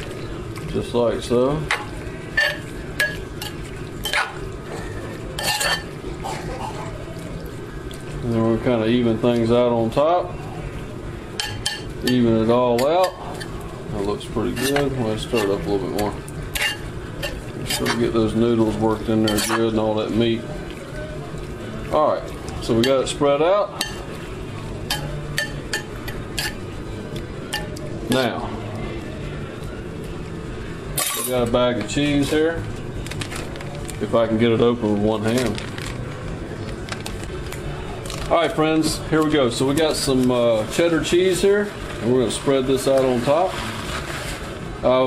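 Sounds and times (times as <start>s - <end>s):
spoon clinking and scraping dish: 1.7s - 4.4s, 5.4s - 6.0s, 14.5s - 18.0s, 19.3s - 19.7s, 24.9s - 26.6s.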